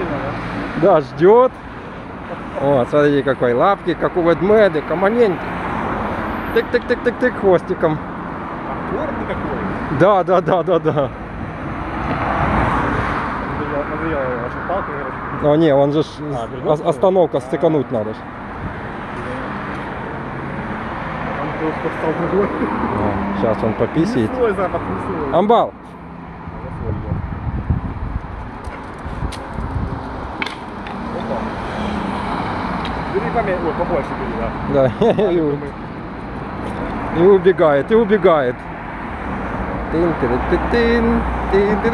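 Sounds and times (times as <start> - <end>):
car passing: 0.0 - 41.9.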